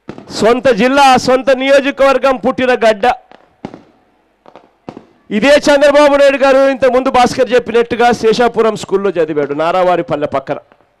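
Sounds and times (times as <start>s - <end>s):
short sharp pops: 0.0s - 0.4s, 3.3s - 5.2s
man speaking: 0.3s - 3.3s, 5.3s - 10.7s.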